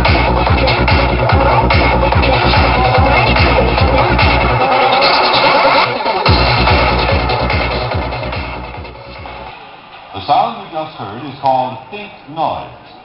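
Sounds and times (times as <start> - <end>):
loud psytrance music: 0.0 - 12.1.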